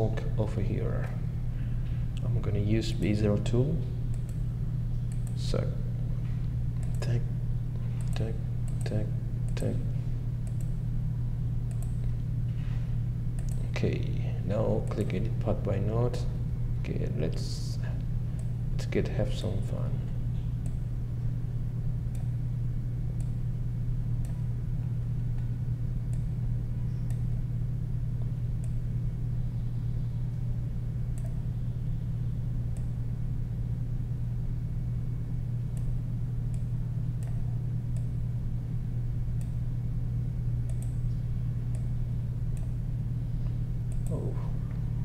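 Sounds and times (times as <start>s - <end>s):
low electrical hum: 0.0s - 45.0s
faint mouse clicks: 13.4s - 13.7s, 31.2s - 31.4s, 40.7s - 42.0s, 43.9s - 44.2s.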